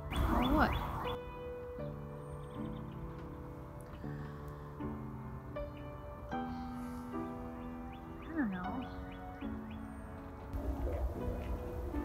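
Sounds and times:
soft music of held chords: 0.0s - 12.0s.

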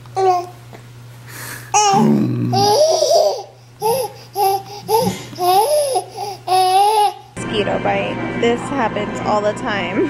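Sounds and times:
babies laughing: 1.8s - 7.3s.

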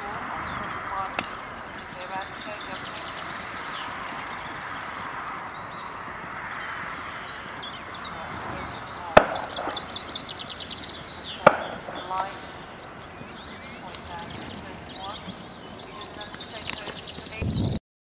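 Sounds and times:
small birds trilling: 0.0s - 17.8s
sharp knocks: 11.4s - 12.3s.

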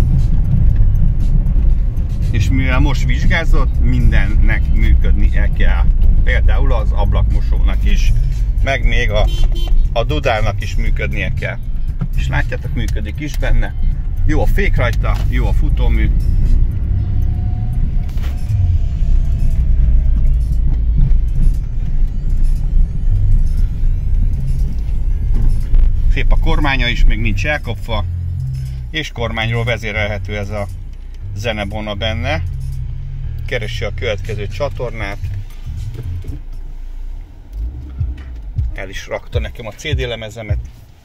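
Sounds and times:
car engine and road rumble: 0.0s - 41.0s.

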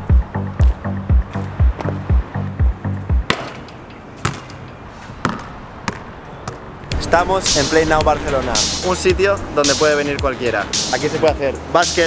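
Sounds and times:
music with heavy bass beat: 0.0s - 3.3s, 6.9s - 12.0s.

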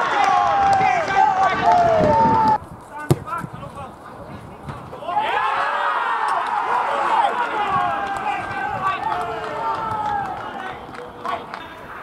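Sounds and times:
men shouting and calling: 0.0s - 3.9s, 4.5s - 12.0s.

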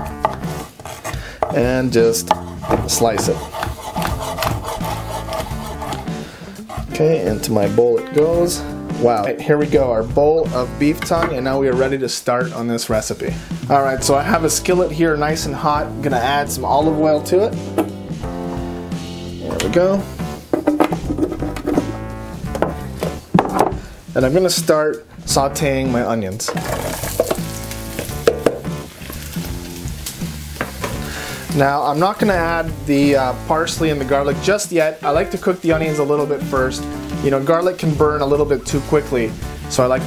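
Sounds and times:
background music: 0.0s - 40.0s
knife knocking on wooden board: 2.2s - 4.6s, 20.5s - 21.9s, 22.5s - 23.8s, 28.2s - 28.7s
knife slicing through meat: 2.4s - 6.9s
plucked guitar music: 4.2s - 9.8s, 26.5s - 31.0s.

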